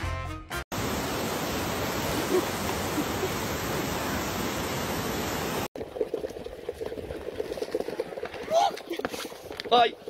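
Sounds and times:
music: 0.0 - 0.6
creek pouring over rocks: 0.8 - 10.0.

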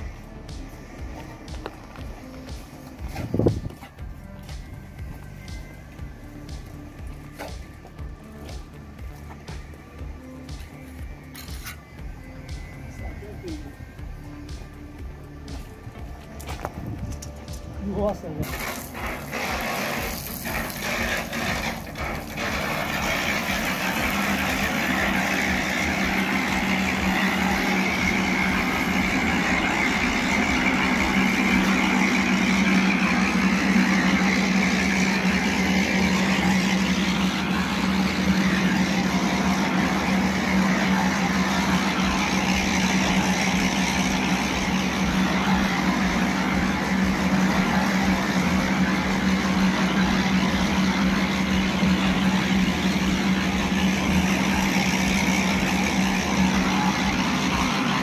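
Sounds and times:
machine engine humming: 0.0 - 58.0.

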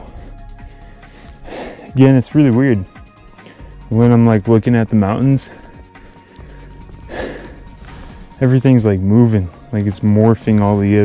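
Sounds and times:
person breathing out heavily: 0.0 - 2.0, 3.1 - 3.9, 5.5 - 8.4.

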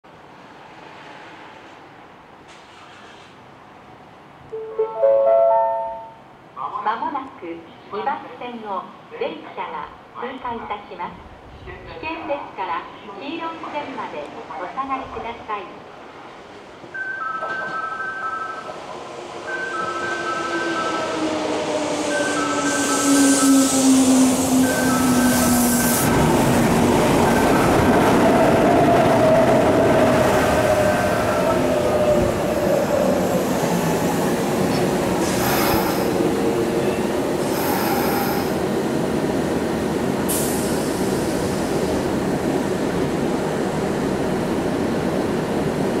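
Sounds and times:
train wheels on rails: 0.4 - 3.6, 16.8 - 46.0.

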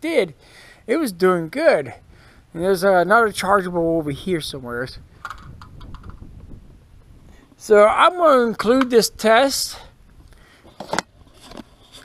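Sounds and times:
steady low rumble: 1.4 - 8.2
camera handling rustles: 5.2 - 6.2, 10.6 - 12.0.

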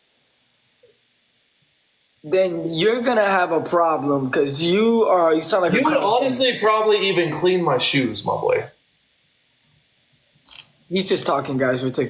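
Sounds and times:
man speaking: 2.3 - 8.7, 10.9 - 12.0.

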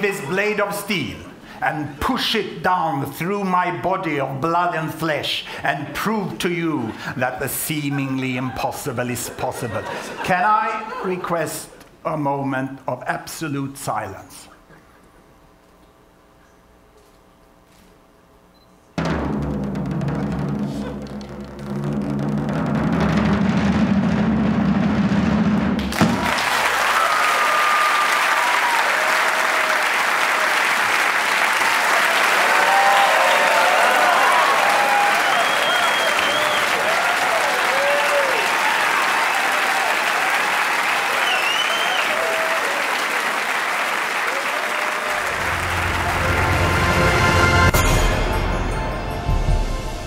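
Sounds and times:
drum roll ending in hit: 19.0 - 26.5
audience applauding and cheering: 25.8 - 49.0
low closing music: 45.2 - 50.0.

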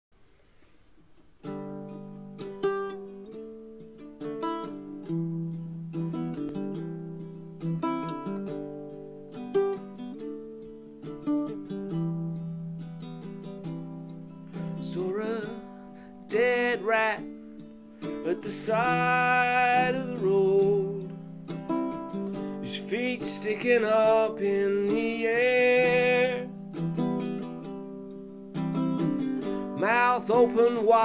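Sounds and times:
ukulele playing: 1.0 - 31.0.

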